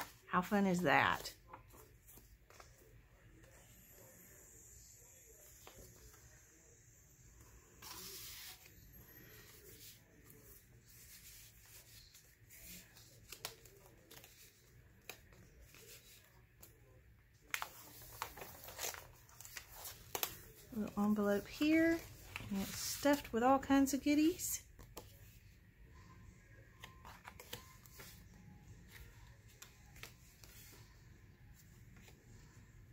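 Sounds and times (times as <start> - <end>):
paper rustling: 9.3 - 16.8, 17.4 - 23.3, 26.8 - 32.3.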